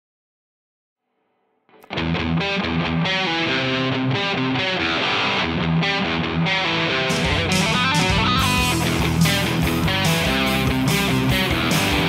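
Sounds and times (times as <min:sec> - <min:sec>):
distorted electric guitar: 0:01.7 - 0:12.0.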